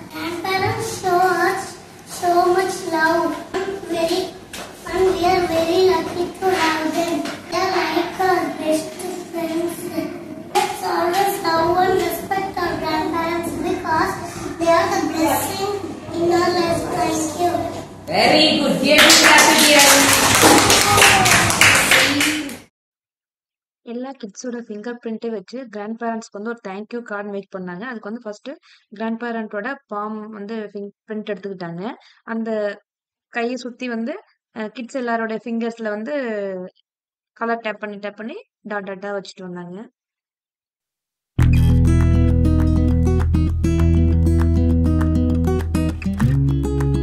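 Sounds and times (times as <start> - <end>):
voices: 0.1 - 22.5
hand claps: 19.0 - 22.7, 41.9 - 47.0.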